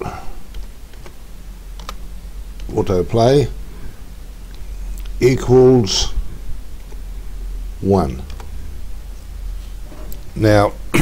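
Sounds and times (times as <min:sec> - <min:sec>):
low steady hum: 0:00.0 - 0:11.0
keyboard typing clicks: 0:01.8 - 0:02.0, 0:08.2 - 0:08.6.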